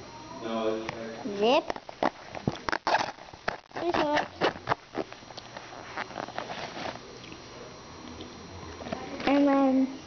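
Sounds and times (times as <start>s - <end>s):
child's voice: 1.3s - 1.7s, 3.8s - 4.4s, 9.0s - 10.0s
plastic pouch zipper rasping: 1.6s - 7.0s
zipper clicks: 2.0s - 5.2s.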